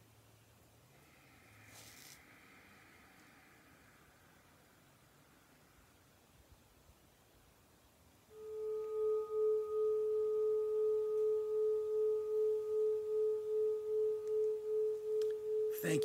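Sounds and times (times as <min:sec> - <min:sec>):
meditation chime ringing: 0:09.2 - 0:16.0.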